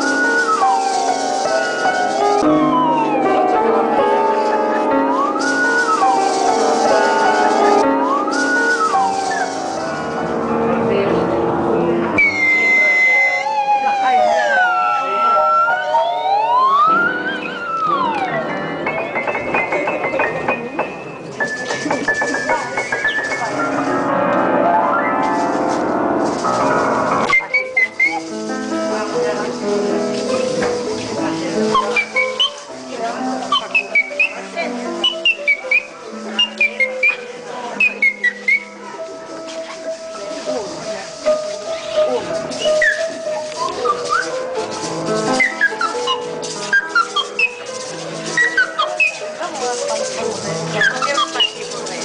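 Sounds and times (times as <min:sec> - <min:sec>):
piano notes: 0:00.0 - 0:52.0
high sliding whistle: 0:05.1 - 0:09.8, 0:12.2 - 0:18.3, 0:45.3 - 0:47.6.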